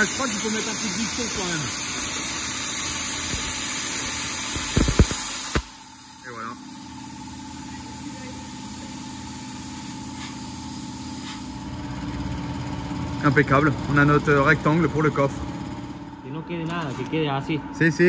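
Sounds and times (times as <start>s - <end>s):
plasma torch cutting hiss: 0.0s - 11.7s
machine hum: 0.0s - 18.0s.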